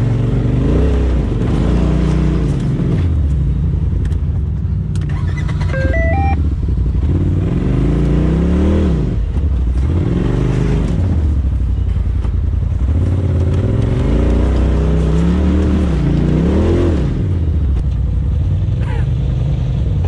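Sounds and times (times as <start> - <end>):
off-road vehicle engine revving: 0.0 - 3.5, 4.9 - 11.9, 12.7 - 17.9
rising electronic beep: 5.4 - 6.4.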